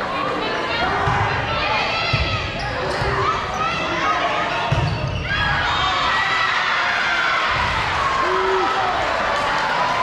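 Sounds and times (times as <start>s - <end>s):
crowd and player voices: 0.0s - 10.0s
people shouting: 5.3s - 9.2s.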